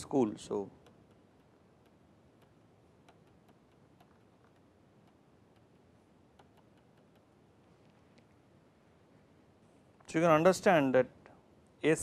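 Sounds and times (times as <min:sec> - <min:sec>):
stylus tapping on pen tablet: 0:00.8 - 0:07.4.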